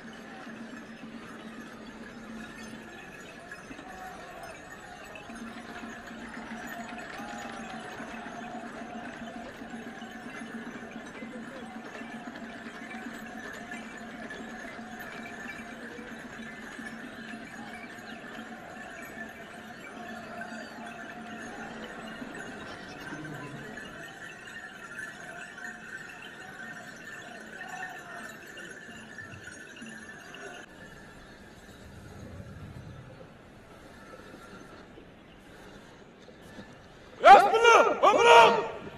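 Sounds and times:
large crowd noise: 0.0s - 38.9s.

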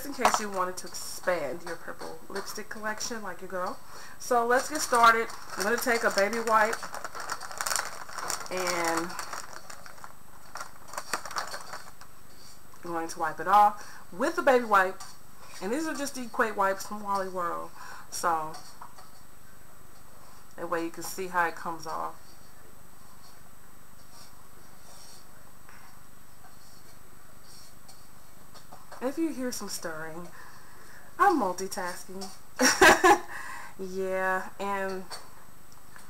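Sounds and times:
faint steady hiss: 0.0s - 36.0s
wipe package clicks and rustles: 4.6s - 12.1s.

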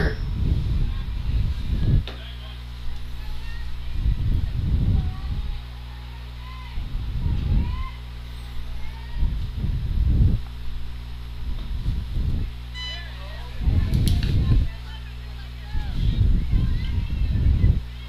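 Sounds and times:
wind buffeting microphone: 0.0s - 5.8s, 6.7s - 12.7s, 13.4s - 14.9s, 15.7s - 18.0s
faint high voices calling: 0.0s - 9.6s, 12.5s - 18.0s
steady electrical hum: 0.0s - 18.0s
short high beep: 12.7s - 13.2s.

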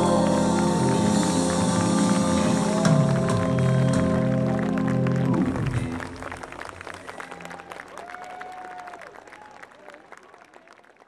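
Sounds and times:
live rock band: 0.0s - 6.5s
audience applause: 0.0s - 11.0s.

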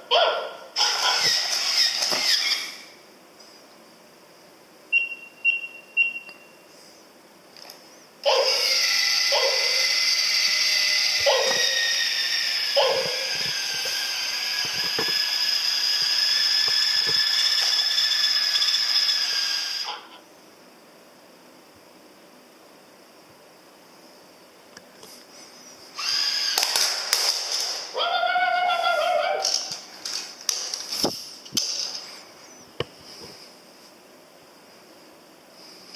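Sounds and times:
toy gear motor whining: 0.8s - 3.0s, 8.2s - 20.1s, 25.9s - 32.0s
short electronic beeps: 4.9s - 6.6s.

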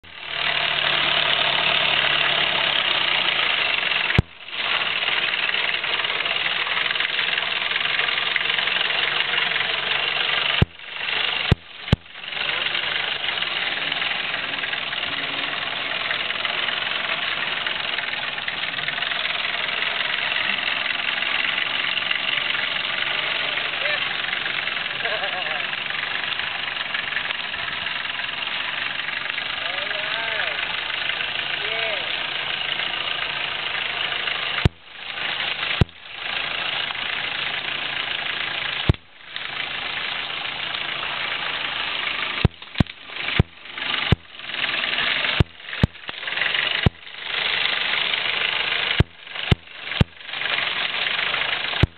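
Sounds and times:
engine running at low speed: 0.0s - 51.9s.

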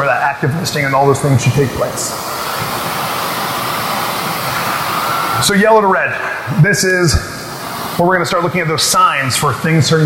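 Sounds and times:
high-pitched hiss: 0.6s - 10.0s.

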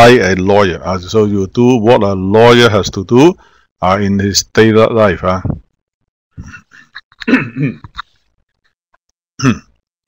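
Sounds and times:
person clearing throat: 6.4s - 8.0s, 9.4s - 9.8s.

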